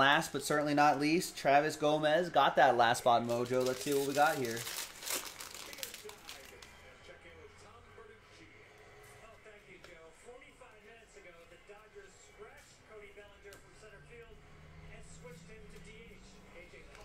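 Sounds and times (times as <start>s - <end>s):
trading cards being handled: 3.0s - 6.7s.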